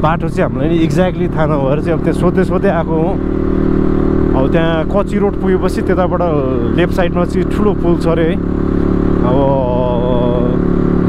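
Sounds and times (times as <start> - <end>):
man talking: 0.0 - 3.2, 4.3 - 8.4, 9.2 - 10.6
dirt bike engine running: 0.0 - 11.0.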